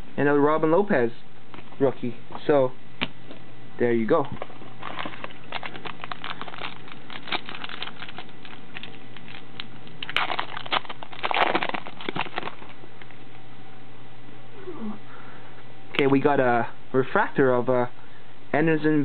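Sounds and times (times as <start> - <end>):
cards clicking and rustling: 4.2 - 12.8
foil wrapper tearing and crinkling: 4.5 - 12.8.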